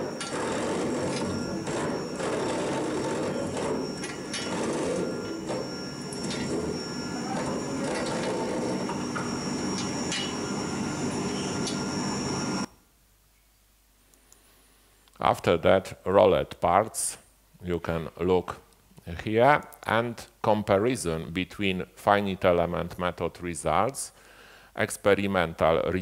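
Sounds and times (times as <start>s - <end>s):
rolling mill machine noise: 0.0s - 12.7s
steady high whine: 0.0s - 12.7s.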